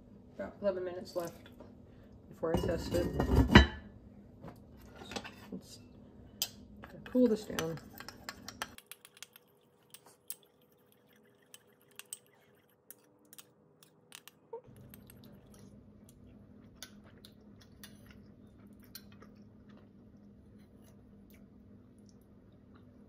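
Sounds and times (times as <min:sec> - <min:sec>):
faint low hum: 0:00.0 - 0:23.0
spoon clicking in ceramic bowl: 0:07.0 - 0:10.5.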